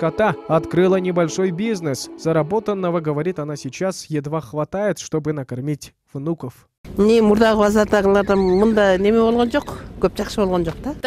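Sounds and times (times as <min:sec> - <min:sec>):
farm animal calling: 0:07.8 - 0:10.0.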